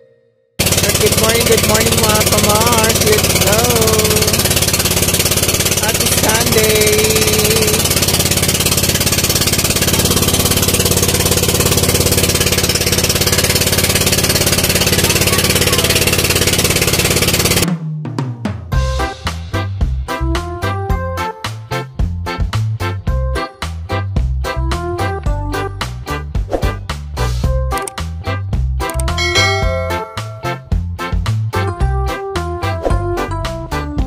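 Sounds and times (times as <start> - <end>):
boat engine running: 0.6 - 17.7, 28.9 - 30.8
upbeat music with drum beat: 0.8 - 34.0
person calling out: 5.8 - 7.8.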